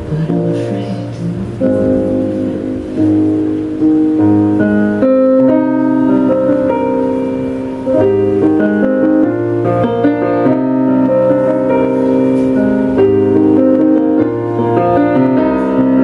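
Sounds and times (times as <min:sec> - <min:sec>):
solo piano chords: 0:00.0 - 0:16.0.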